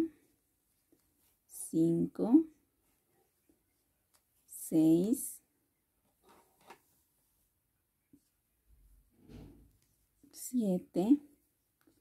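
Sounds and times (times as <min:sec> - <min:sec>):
crochet hook rustling yarn: 0:00.0 - 0:12.0.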